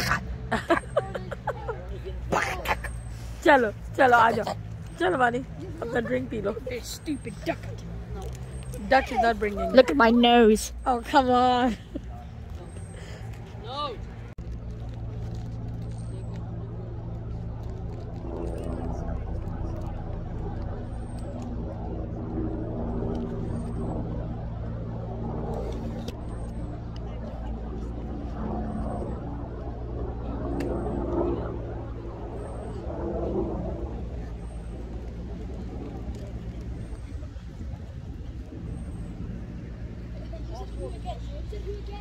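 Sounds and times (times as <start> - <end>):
faint murmured voices: 0.0 - 42.0
low engine hum: 0.0 - 42.0.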